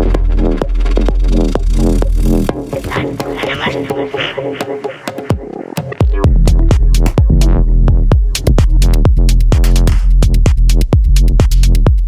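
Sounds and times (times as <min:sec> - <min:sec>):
heavy bass: 0:00.0 - 0:12.0
kick drum: 0:00.0 - 0:12.0
pitched synth figure: 0:02.8 - 0:05.0.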